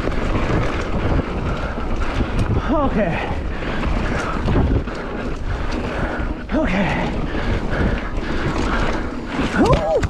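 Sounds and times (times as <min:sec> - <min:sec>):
bike rattling over bumps: 0:00.0 - 0:10.0
bike tyres on dirt trail: 0:00.0 - 0:10.0
wind rumble on microphone: 0:00.0 - 0:10.0.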